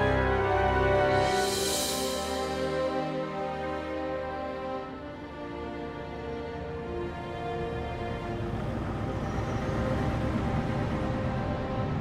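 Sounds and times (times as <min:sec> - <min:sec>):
city traffic rumble: 0:00.0 - 0:12.0
faint background music: 0:00.0 - 0:12.0.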